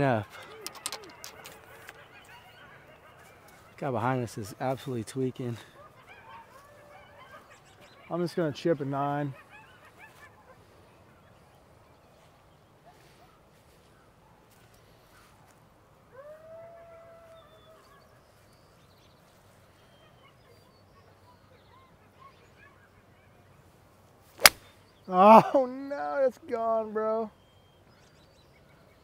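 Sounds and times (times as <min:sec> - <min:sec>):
bird calling: 0:00.0 - 0:03.8
golf club striking ball: 0:24.4 - 0:24.7.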